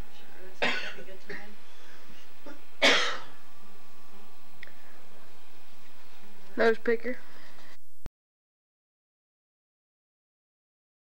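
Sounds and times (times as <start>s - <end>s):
person coughing: 0.6s - 1.1s, 2.4s - 3.4s.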